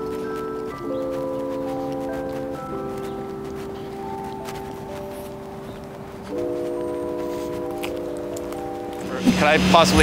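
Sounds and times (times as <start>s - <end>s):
chime-like music chord: 6.4s - 10.0s.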